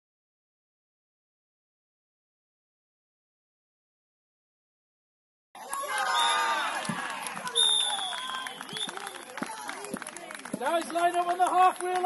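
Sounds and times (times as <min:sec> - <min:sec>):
voices shouting: 0:05.6 - 0:09.9.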